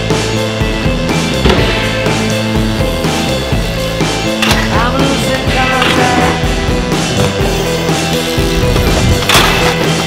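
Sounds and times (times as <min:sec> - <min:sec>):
music soundtrack: 0:00.0 - 0:10.0
bike tyres rolling on concrete: 0:07.5 - 0:10.0.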